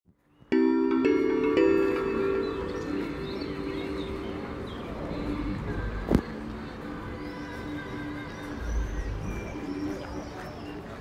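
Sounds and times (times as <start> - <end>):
small birds chirping: 2.3 - 5.6.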